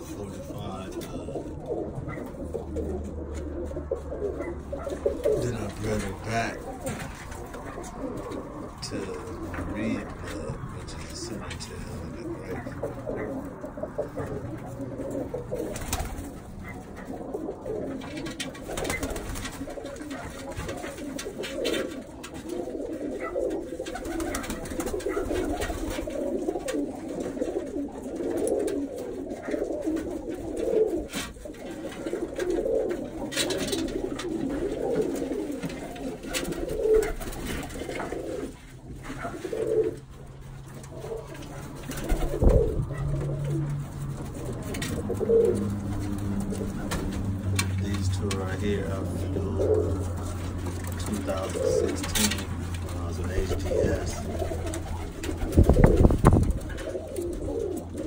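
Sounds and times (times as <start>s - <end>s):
pigeons cooing: 0.0s - 58.0s.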